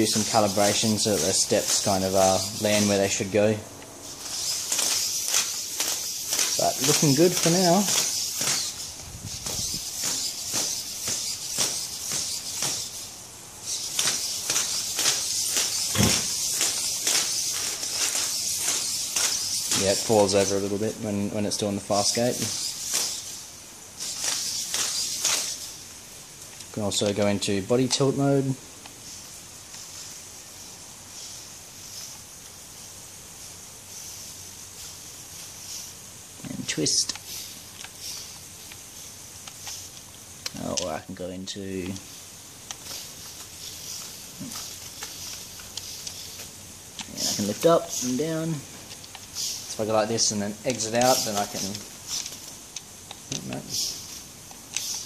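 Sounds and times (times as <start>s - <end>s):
robot feet tapping on concrete: 0.0s - 3.2s, 4.0s - 20.6s, 22.0s - 25.8s, 41.8s - 55.0s
steady high hiss: 0.0s - 55.0s.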